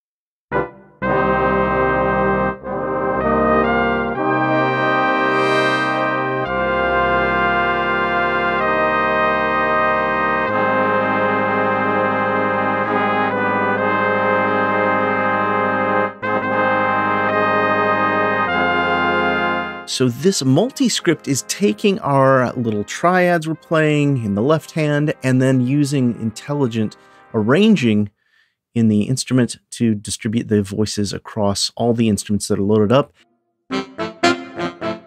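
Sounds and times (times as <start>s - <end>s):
jazz horn section chords: 0.5s - 28.1s, 33.7s - 35.0s.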